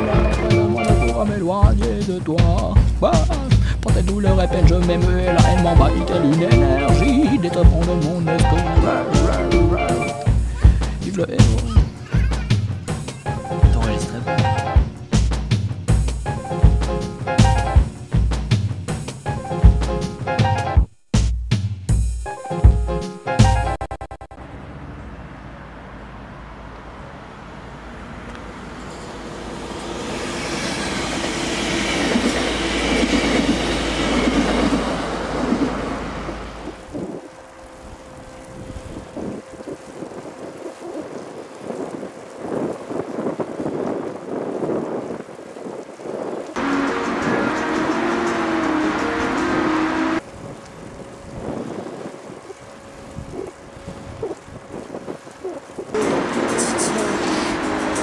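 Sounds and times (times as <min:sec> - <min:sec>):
train rumbling on rails: 0:00.0 - 0:20.8, 0:24.4 - 0:58.0.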